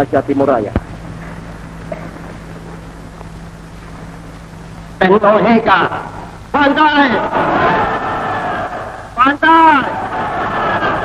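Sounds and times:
crowd noise: 0:05.1 - 0:11.0
men shouting together: 0:06.6 - 0:11.0.

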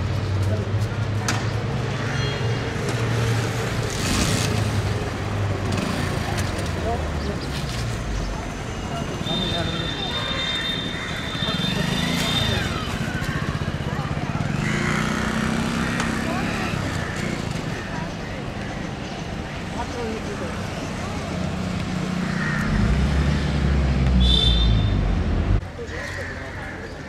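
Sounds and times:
traffic: 0:00.0 - 0:27.0
people talking: 0:06.0 - 0:10.7, 0:11.3 - 0:14.8, 0:15.8 - 0:17.1.

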